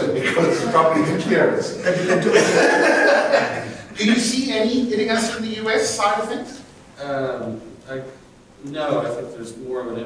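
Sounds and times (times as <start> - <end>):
men laughing: 0.0 - 4.0
men talking: 0.0 - 10.0.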